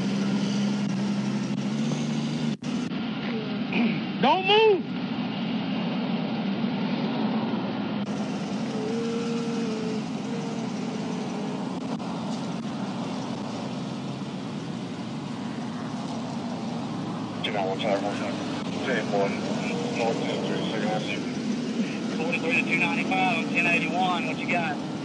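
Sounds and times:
highway traffic: 0.0 - 25.0
vehicle engines idling: 0.0 - 25.0.

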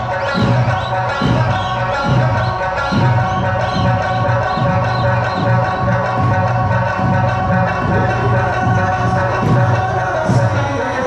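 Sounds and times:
steady pulsing beat: 0.0 - 11.0.

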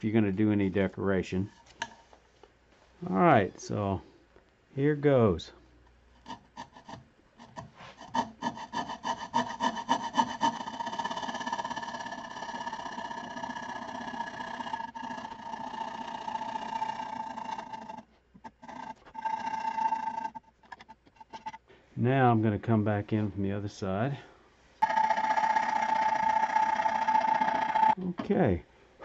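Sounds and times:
saw cutting wood: 6.2 - 20.4, 24.8 - 28.0.

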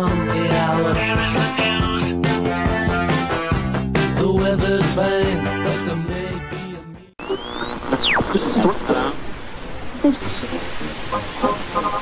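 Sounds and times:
muffled radio voice: 0.8 - 2.2, 7.9 - 9.2, 10.0 - 12.0.

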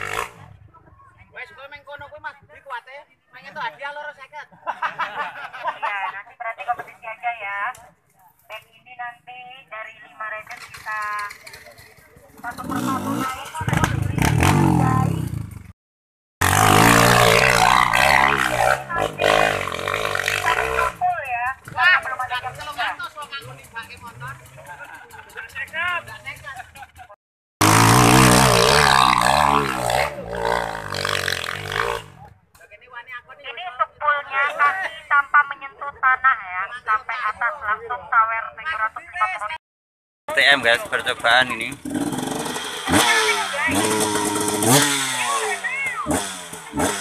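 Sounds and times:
motorcycle engine revving: 0.0 - 0.7, 10.4 - 15.8, 16.4 - 32.4, 40.3 - 47.0
people talking: 18.3 - 19.6, 20.4 - 26.9, 32.6 - 39.6, 40.3 - 41.8, 42.9 - 44.4, 45.0 - 46.1.

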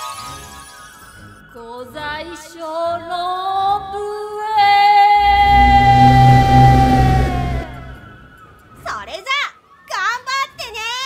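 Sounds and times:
deep rumbling blast: 5.2 - 8.3.

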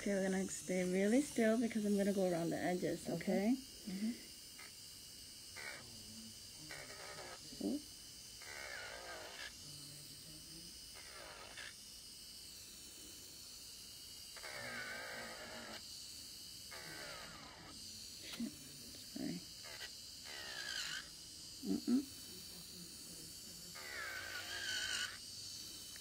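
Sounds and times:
electric nail drill filing: 0.0 - 26.0.

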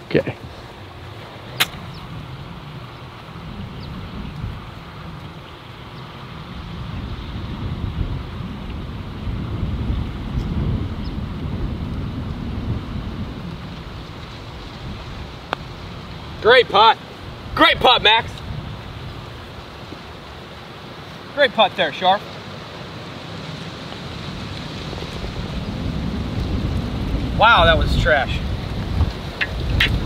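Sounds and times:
wind buffeting microphone: 0.0 - 21.3, 22.3 - 30.0
putter striking golf ball: 1.6 - 1.9.

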